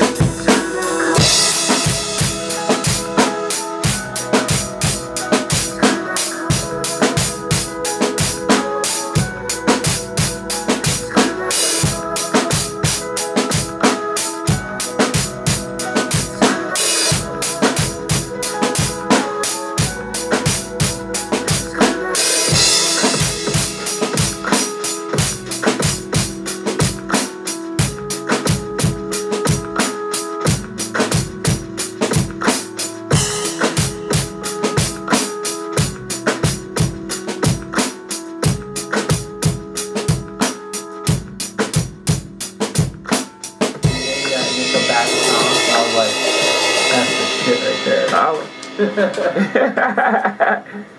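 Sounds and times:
drum kit beat: 0.0s - 50.4s
backing track: 0.0s - 50.7s
cymbals washing: 43.8s - 50.1s.

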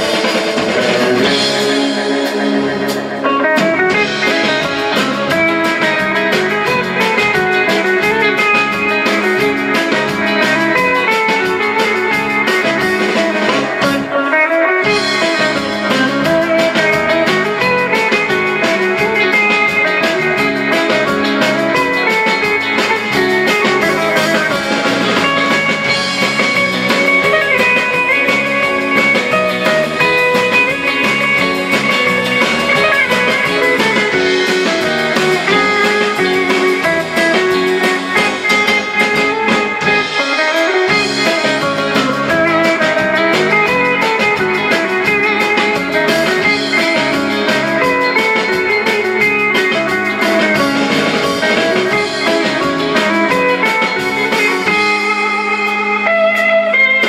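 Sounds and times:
drums playing dance beat: 0.0s - 14.2s, 14.8s - 57.0s
bass guitar: 0.0s - 57.0s
electric guitars playing melody: 0.0s - 57.0s.

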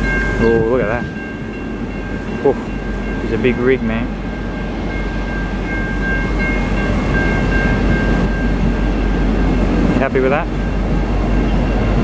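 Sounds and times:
diesel locomotive rumbling: 0.0s - 12.0s.

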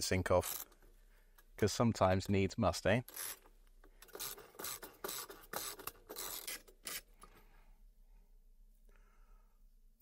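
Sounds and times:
ratchet pawl clicking: 3.1s - 7.0s.

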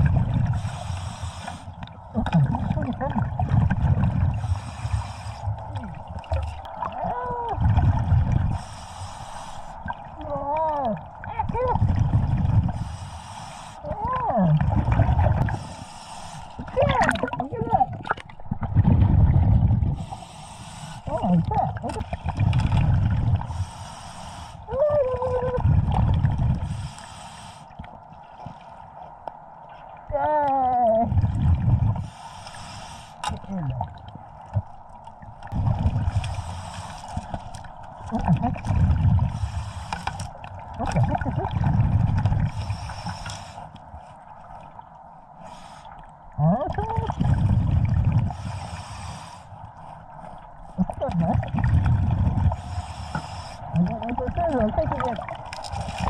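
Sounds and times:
exhaled bubbles gushing: 0.0s - 0.8s, 1.9s - 8.7s, 9.8s - 12.9s, 13.8s - 15.8s, 16.6s - 20.1s, 21.0s - 23.6s, 24.7s - 26.8s, 30.0s - 32.1s, 33.2s - 42.8s, 46.3s - 48.6s, 50.8s - 53.0s, 53.6s - 56.0s
regulator inhale hiss: 0.4s - 1.8s, 4.4s - 5.6s, 8.5s - 9.8s, 12.8s - 13.8s, 15.5s - 16.6s, 20.0s - 21.1s, 23.5s - 24.7s, 26.7s - 27.8s, 32.0s - 33.3s, 36.2s - 37.2s, 39.3s - 40.3s, 42.5s - 43.8s, 45.4s - 46.0s, 48.3s - 49.8s, 52.5s - 53.7s.

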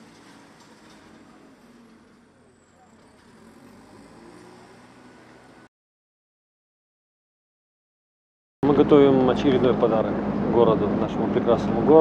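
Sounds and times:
distant voices: 0.0s - 5.7s.

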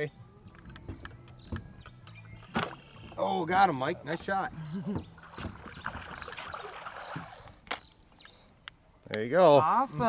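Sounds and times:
water splashing: 2.6s - 8.4s.

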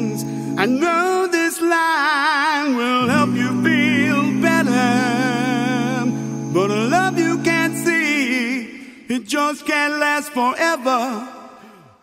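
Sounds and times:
vocal harmony singing: 0.0s - 12.0s.

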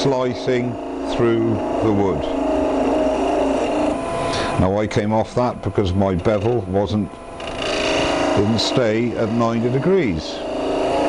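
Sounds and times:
lathe hum: 0.0s - 11.0s.

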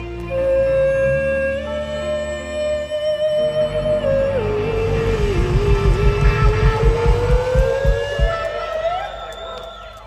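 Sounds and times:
drums beating: 5.1s - 9.7s.

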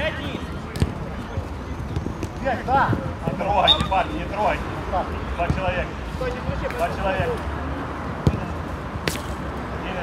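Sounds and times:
football being kicked: 8.2s - 9.3s.

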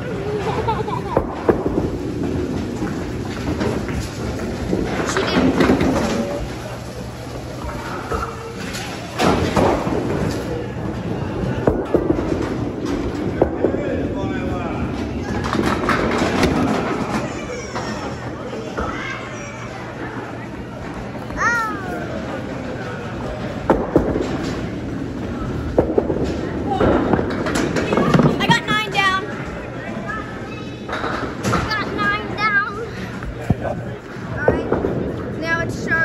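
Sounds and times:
people talking in background: 0.0s - 36.0s
bowling balls knocking pins: 0.5s - 6.8s, 15.0s - 18.0s, 22.1s - 29.5s.

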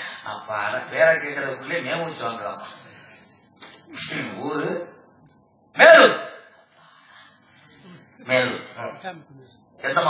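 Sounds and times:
crickets chirping: 0.0s - 10.0s
person speaking: 7.8s - 9.5s.

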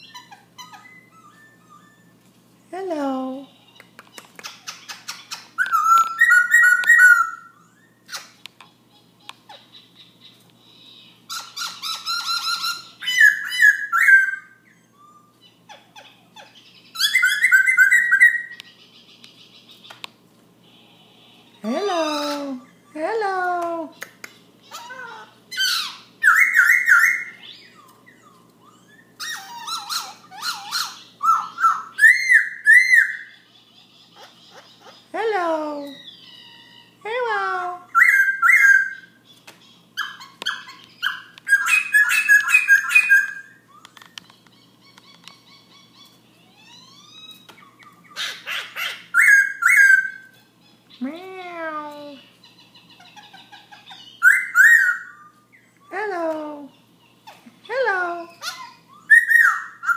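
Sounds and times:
bird singing varied song: 3.6s - 8.3s, 16.4s - 20.0s, 58.3s - 59.9s.

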